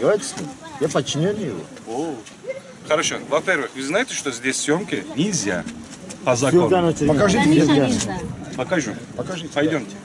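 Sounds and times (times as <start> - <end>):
men arguing: 0.9 - 10.0.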